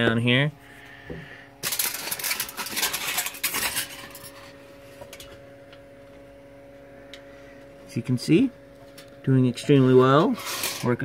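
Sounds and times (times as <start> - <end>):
low steady hum: 0.0 - 11.0
aluminium foil crinkling: 1.6 - 5.3, 10.1 - 11.0.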